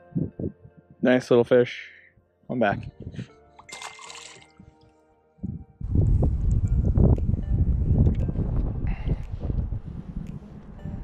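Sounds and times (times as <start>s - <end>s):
faint background music: 0.0s - 11.0s
wind buffeting microphone: 2.7s - 3.3s, 5.4s - 11.0s.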